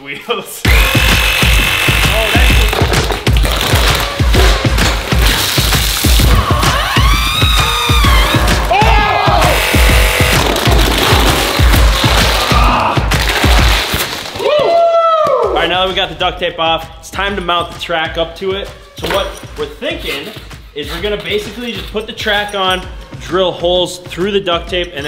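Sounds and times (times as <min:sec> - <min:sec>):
music with steady bass beat: 0:00.7 - 0:14.0.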